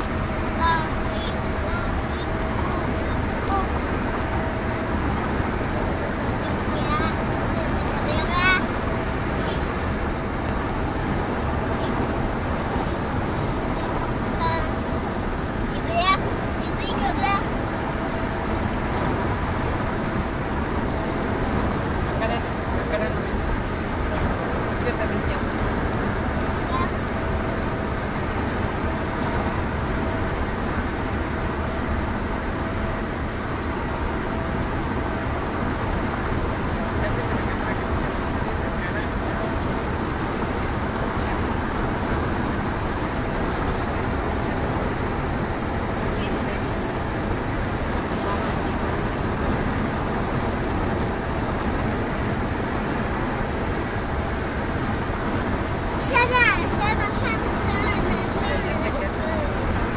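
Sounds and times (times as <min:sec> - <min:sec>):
car road and engine noise: 0:00.0 - 0:59.9.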